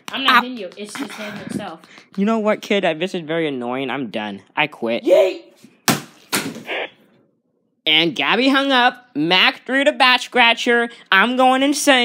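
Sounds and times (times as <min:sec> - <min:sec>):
plastic object smacking: 0:05.8 - 0:06.7.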